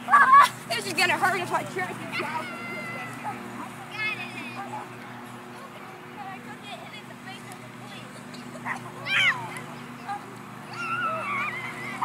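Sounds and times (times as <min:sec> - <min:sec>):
child shouting: 0:00.0 - 0:01.4, 0:02.1 - 0:03.3, 0:09.0 - 0:09.5, 0:10.7 - 0:12.0.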